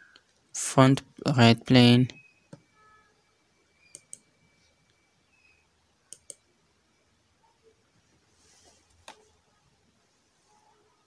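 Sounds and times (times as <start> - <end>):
computer mouse clicks: 3.8 - 4.3, 6.1 - 6.4.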